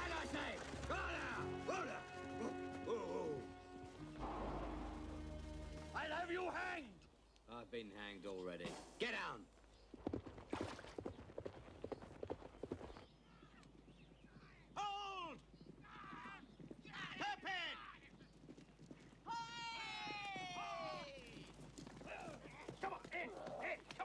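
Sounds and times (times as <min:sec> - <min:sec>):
horses galloping: 0:00.0 - 0:07.1, 0:09.6 - 0:24.0.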